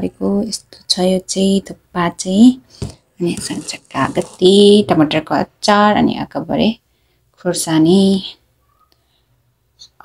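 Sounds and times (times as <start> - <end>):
woman speaking: 3.2 - 6.8, 7.4 - 8.4.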